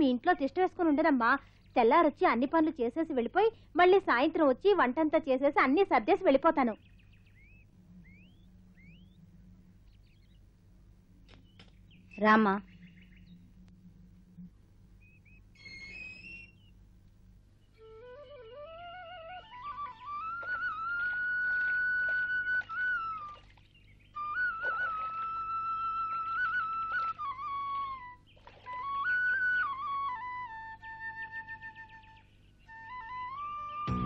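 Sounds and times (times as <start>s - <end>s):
low steady hum: 0.0s - 34.0s
rising whistled bird chirps: 6.8s - 10.4s, 11.4s - 13.6s, 14.4s - 16.8s, 17.6s - 34.0s
flute melody: 17.7s - 23.5s, 24.2s - 34.0s.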